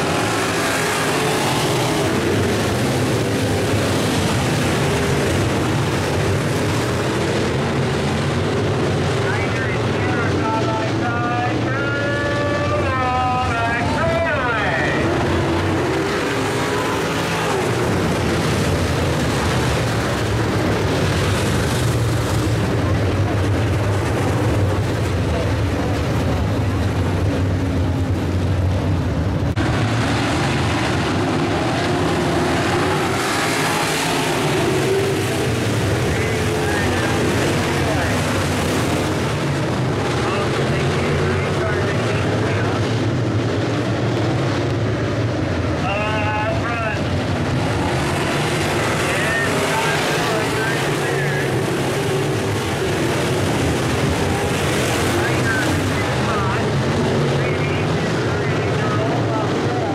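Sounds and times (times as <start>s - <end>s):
race car engines roaring: 0.0s - 59.9s.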